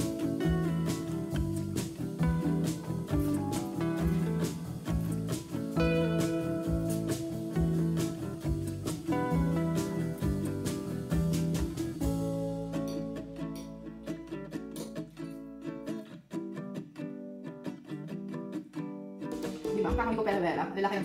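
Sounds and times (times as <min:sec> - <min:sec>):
low beat: 0:00.0 - 0:13.9, 0:19.4 - 0:20.4
plucked acoustic guitar music: 0:00.0 - 0:21.0.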